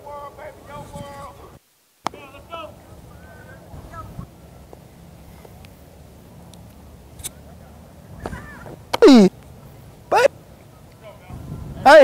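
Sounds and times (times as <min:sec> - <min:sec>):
faint distant voices: 0:00.0 - 0:12.0.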